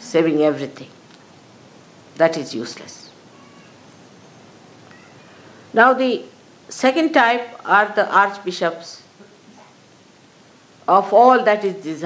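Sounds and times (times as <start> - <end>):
woman speaking: 0.0 - 1.0, 2.2 - 3.2, 5.7 - 9.1, 10.8 - 12.0
recording hiss: 0.0 - 12.0.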